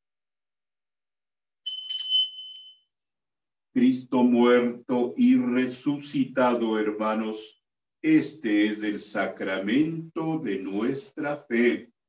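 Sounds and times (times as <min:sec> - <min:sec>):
altar bell ringing: 0:01.7 - 0:02.9.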